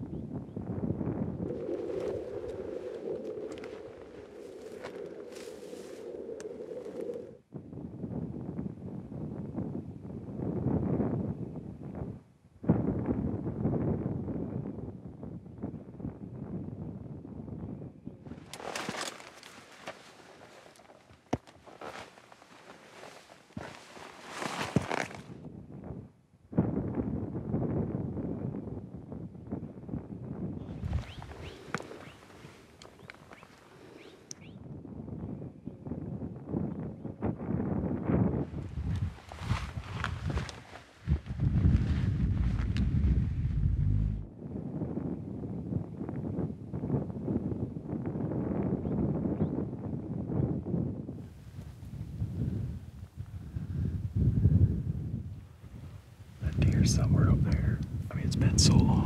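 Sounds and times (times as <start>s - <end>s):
boots stepping on rock and brush: 4.6s - 6.0s, 18.5s - 25.3s
low rushing noise: 42.3s - 44.3s.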